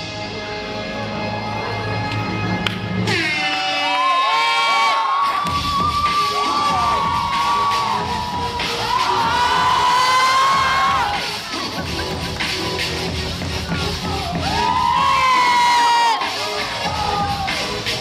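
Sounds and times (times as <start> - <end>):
dance music: 0.0 - 18.0
crowd cheering: 3.1 - 12.8, 13.7 - 18.0.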